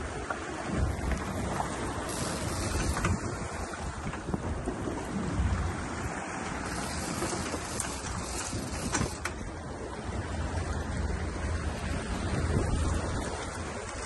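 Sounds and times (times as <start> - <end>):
outboard motors running: 0.0 - 14.0
water rushing past hull: 0.0 - 14.0
wind buffeting microphone: 0.0 - 14.0.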